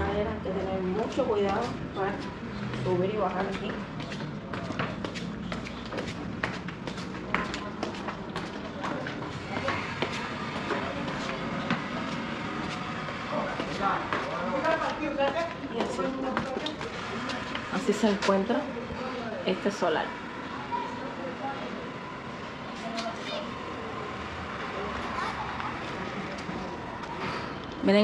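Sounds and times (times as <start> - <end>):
footsteps on tiled stairs: 0.6 - 19.0, 25.6 - 28.0.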